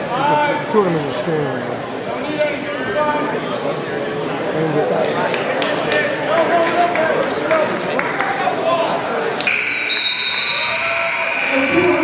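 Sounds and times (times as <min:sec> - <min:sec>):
crowd voices: 0:00.0 - 0:12.0
scoreboard buzzer: 0:09.4 - 0:12.0.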